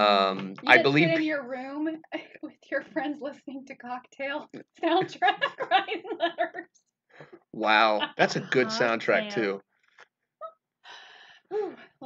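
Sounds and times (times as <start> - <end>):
short voiced sound: 0.0 - 1.2, 7.6 - 9.6.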